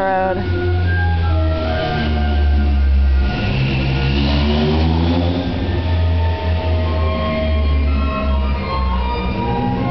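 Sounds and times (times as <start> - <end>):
barrel organ playing a tune: 0.0 - 9.9
vehicle passing: 0.4 - 9.9.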